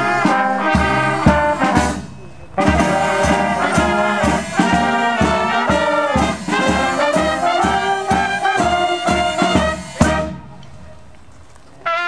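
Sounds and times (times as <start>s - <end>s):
trumpet long held note: 0.0s - 2.0s, 2.6s - 10.4s
brass band playing: 0.0s - 10.6s, 11.8s - 12.0s.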